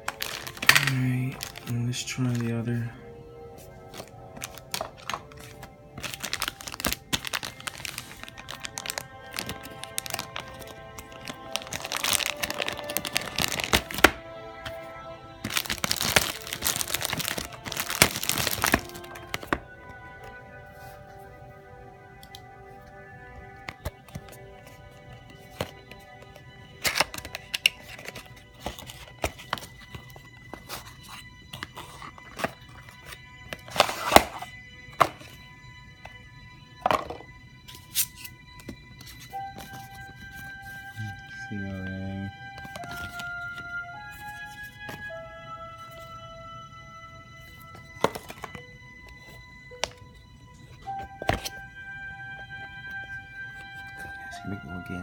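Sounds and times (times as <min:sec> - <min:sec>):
plastic packaging crinkling: 0:00.0 - 0:03.0, 0:03.6 - 0:14.8, 0:15.4 - 0:19.6
background music: 0:00.0 - 0:55.0.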